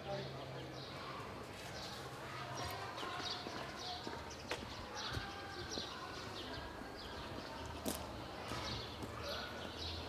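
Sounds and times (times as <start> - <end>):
small birds chirping: 0.0 - 10.0
footsteps on pavement: 1.3 - 10.0.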